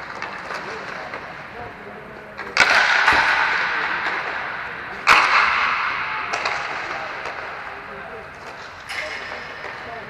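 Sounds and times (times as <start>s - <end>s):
puck cracking against rink boards: 0.0s - 1.5s, 2.4s - 9.9s.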